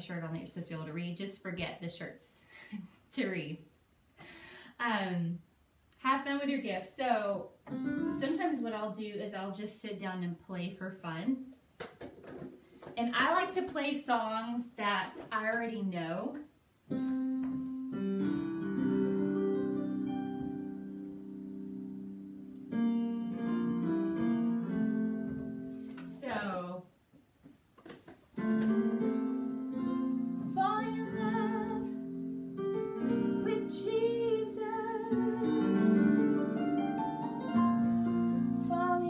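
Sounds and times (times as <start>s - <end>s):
electronic keyboard piano notes: 7.7s - 8.4s, 16.9s - 26.3s, 28.4s - 39.0s
woman singing: 30.4s - 32.0s, 33.4s - 36.2s, 38.6s - 39.0s.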